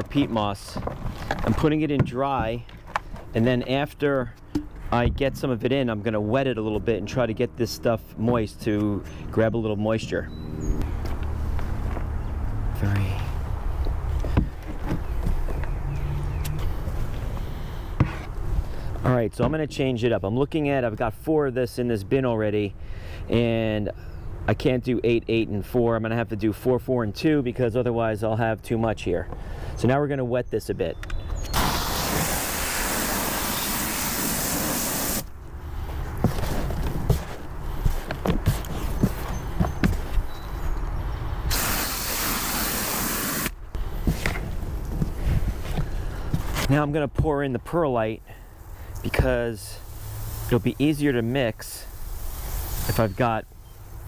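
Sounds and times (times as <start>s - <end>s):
water spraying with a hiss: 31.5s - 35.3s, 41.5s - 43.6s, 48.9s - 54.0s.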